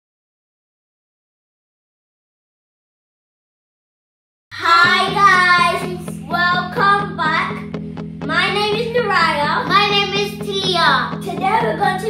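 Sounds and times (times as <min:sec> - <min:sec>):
child singing: 0:04.6 - 0:07.6, 0:08.3 - 0:12.0
instrumental backing with low bass: 0:04.6 - 0:12.0.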